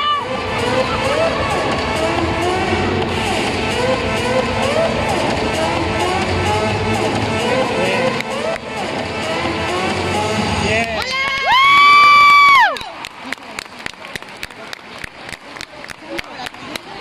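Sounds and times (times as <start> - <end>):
crowd noise: 0.0 - 17.0
high-pitched cheering shout: 11.0 - 13.0
sharp claps: 12.2 - 17.0.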